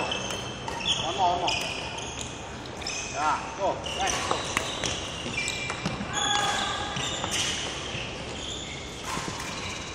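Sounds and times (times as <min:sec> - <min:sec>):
sports shoes squeaking: 0:00.0 - 0:09.9.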